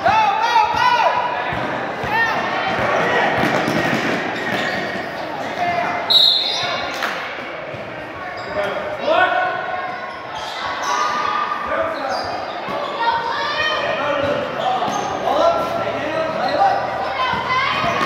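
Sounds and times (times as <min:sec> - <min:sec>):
sneakers squeaking on court floor: 0:02.8 - 0:09.0, 0:09.9 - 0:11.2, 0:11.8 - 0:18.0.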